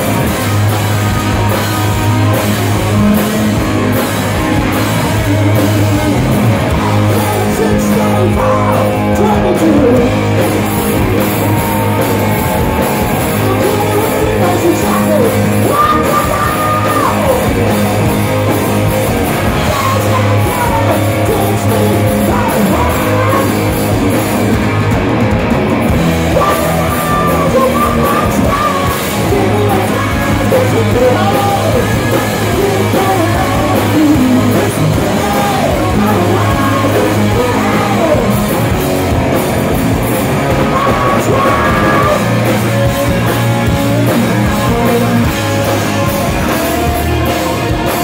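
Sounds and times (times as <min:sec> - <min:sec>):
person singing lead vocal: 0:00.0 - 0:10.6, 0:11.5 - 0:24.5, 0:26.0 - 0:38.8, 0:40.3 - 0:48.0
distorted electric guitars: 0:00.0 - 0:48.0
drum kit: 0:00.0 - 0:48.0
electric bass: 0:00.0 - 0:48.0
hard rock band playing: 0:00.0 - 0:48.0.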